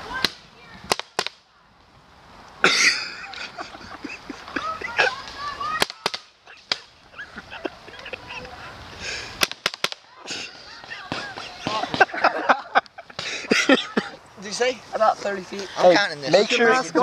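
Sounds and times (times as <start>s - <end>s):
people shouting: 4.5s - 6.9s, 9.9s - 12.2s.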